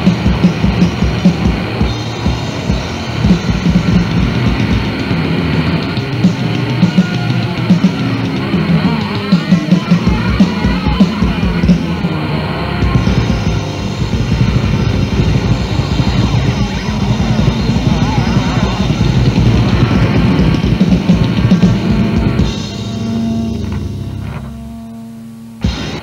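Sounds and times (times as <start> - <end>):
distorted electric guitar: 0.0 - 26.0
drums: 0.0 - 26.0
metal band playing: 0.0 - 26.0.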